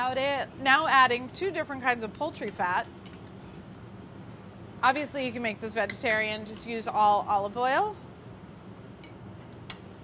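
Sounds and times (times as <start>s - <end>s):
low kitchen hum: 0.0s - 10.0s.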